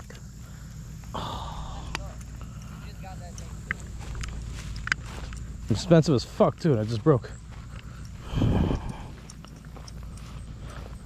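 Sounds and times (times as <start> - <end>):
low steady rumble: 0.0 - 11.0
small ticks and rustles: 0.0 - 11.0.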